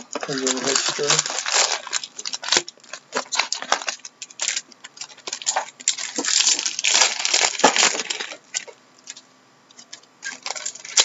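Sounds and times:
trading cards rustling and clicking: 0.0 - 11.0.

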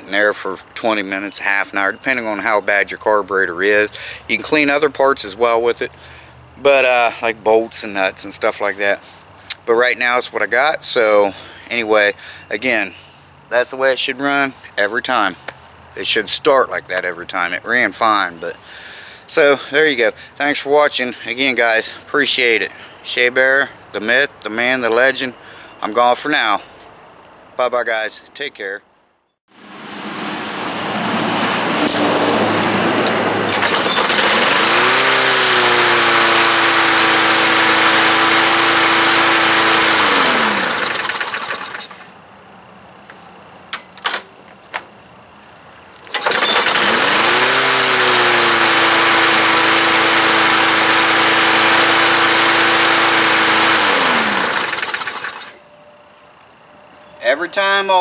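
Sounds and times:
lawn mower engine running: 29.6 - 42.2, 46.0 - 55.6.

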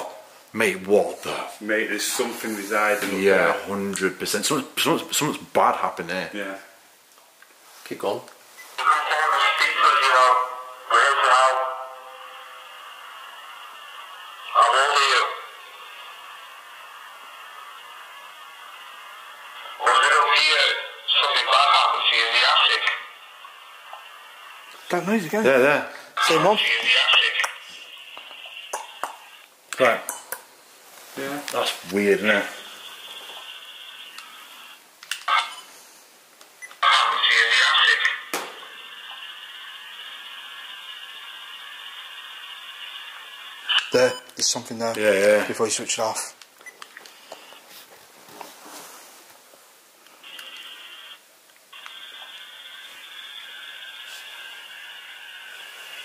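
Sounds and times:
steady hiss: 0.0 - 56.0
voice from small speaker: 8.8 - 12.7, 19.7 - 23.1, 26.2 - 27.6, 36.8 - 38.3.

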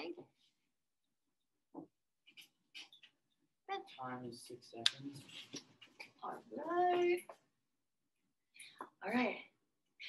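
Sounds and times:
woman speaking: 6.2 - 7.4.

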